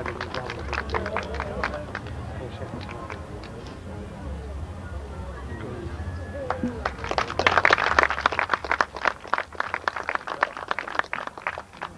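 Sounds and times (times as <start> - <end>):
small crowd applauding: 0.0 - 3.7, 5.3 - 11.9.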